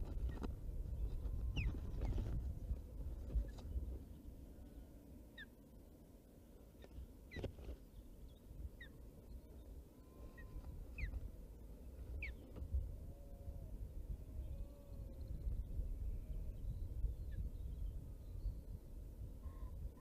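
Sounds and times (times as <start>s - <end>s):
wind rumbling on microphone: 0.0s - 5.0s, 6.9s - 20.0s.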